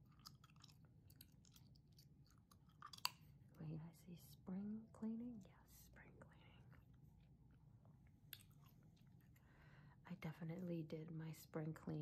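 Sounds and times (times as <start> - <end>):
gum chewing: 0.0 - 3.4, 8.2 - 9.4
person speaking softly: 3.5 - 7.0.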